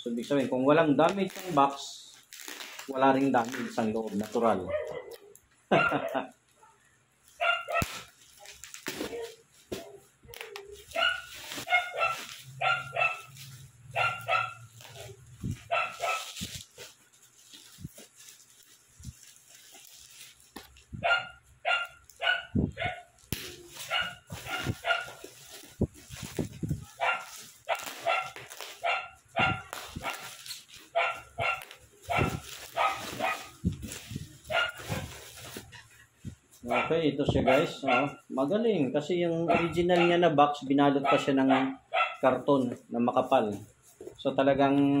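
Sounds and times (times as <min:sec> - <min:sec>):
plastic wrapping crinkling: 0:00.0 - 0:38.7, 0:42.2 - 0:45.0
dog barking: 0:04.6 - 0:06.8, 0:07.4 - 0:08.1, 0:10.9 - 0:13.3, 0:13.9 - 0:16.4, 0:21.0 - 0:23.1, 0:23.8 - 0:25.2, 0:26.8 - 0:33.6, 0:34.4 - 0:35.2, 0:36.6 - 0:38.3, 0:39.4 - 0:42.3.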